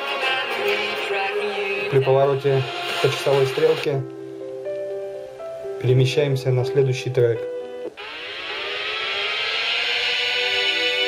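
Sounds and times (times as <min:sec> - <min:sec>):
rising synth sweep: 0:07.9 - 0:11.0.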